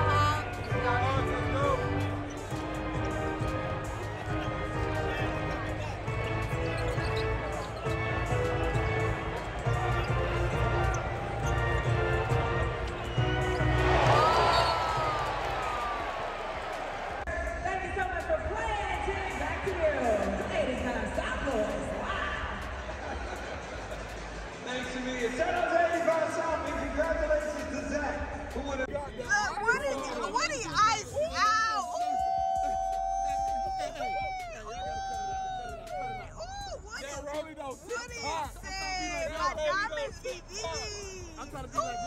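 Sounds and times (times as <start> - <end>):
music over loudspeakers: 0.0 - 16.7, 17.3 - 42.0
crowd noise: 0.0 - 42.0
voices: 16.8 - 42.0.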